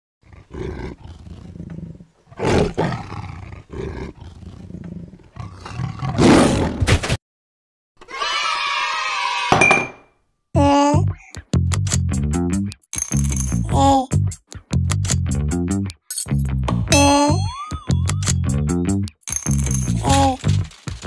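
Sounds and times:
tiger growling and roaring: 0:00.2 - 0:06.8.

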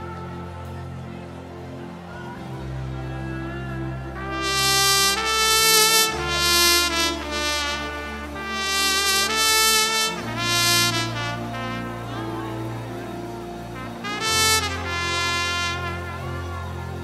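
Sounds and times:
sustained low chords: 0:00.0 - 0:17.0
trumpet playing long notes: 0:00.0 - 0:17.0.

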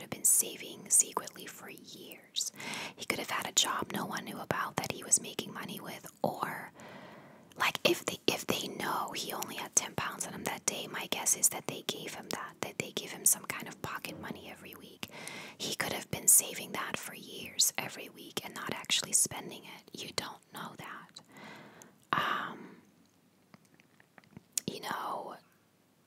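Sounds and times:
woman whispering: 0:00.0 - 0:06.8, 0:07.6 - 0:21.3, 0:22.1 - 0:22.8, 0:24.6 - 0:25.5.

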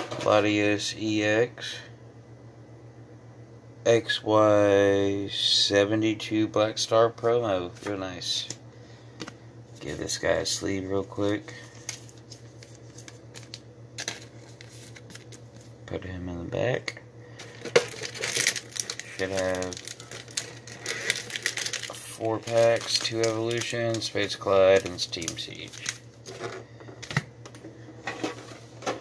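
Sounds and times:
steady low hum: 0:00.0 - 0:29.0
foil wrappers crinkling: 0:11.1 - 0:15.8, 0:17.4 - 0:27.1
card sliding into plastic sleeve: 0:11.2 - 0:15.7.

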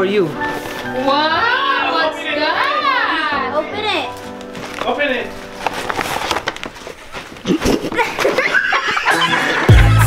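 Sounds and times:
plastic wrapper and tissue crinkling: 0:00.3 - 0:01.8, 0:03.8 - 0:09.0.

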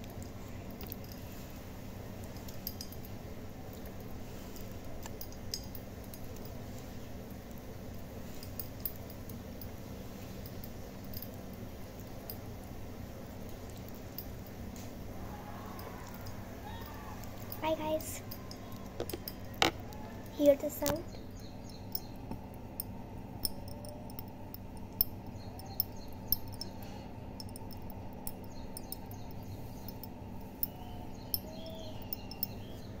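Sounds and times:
low background hum: 0:00.0 - 0:33.0.

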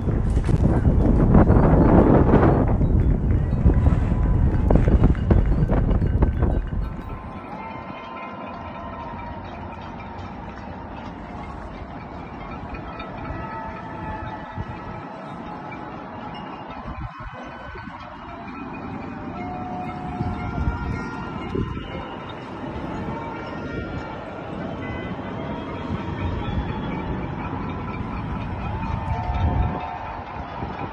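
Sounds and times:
distant city noise: 0:00.0 - 0:30.9.

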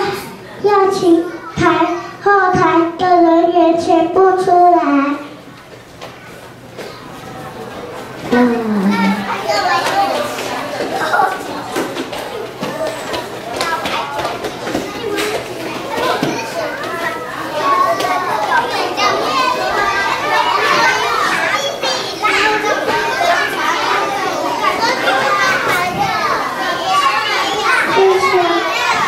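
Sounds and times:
children chattering and calling out: 0:00.0 - 0:29.0.

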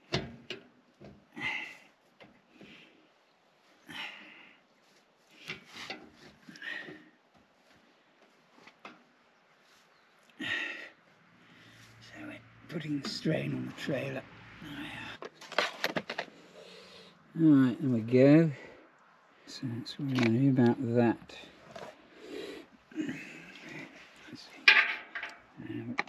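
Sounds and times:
man breathing: 0:01.3 - 0:03.1, 0:03.8 - 0:04.7, 0:05.3 - 0:07.2, 0:10.3 - 0:12.0, 0:16.3 - 0:17.3.

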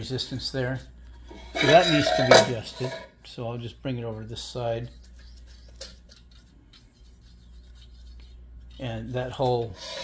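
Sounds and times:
low steady hum: 0:00.0 - 0:10.0
metal blade scraping metal: 0:00.7 - 0:03.1.

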